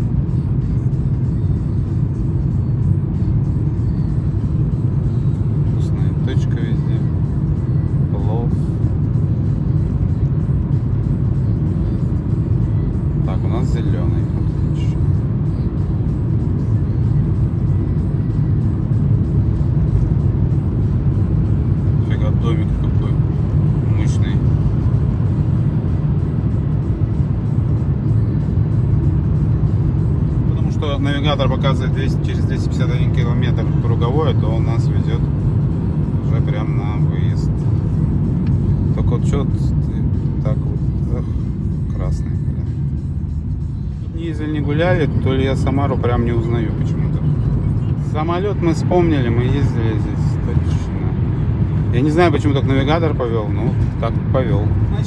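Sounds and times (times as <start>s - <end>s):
car engine and tyres rumbling: 0.0s - 55.0s.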